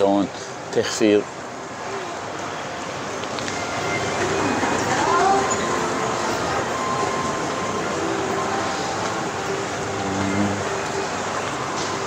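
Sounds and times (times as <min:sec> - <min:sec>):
ventilation hum: 0:00.0 - 0:12.0
crowd noise: 0:00.1 - 0:12.0.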